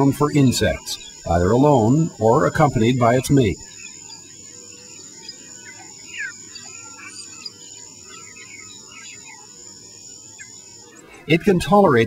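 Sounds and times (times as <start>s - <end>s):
high-pitched insect chorus: 0.0s - 12.0s.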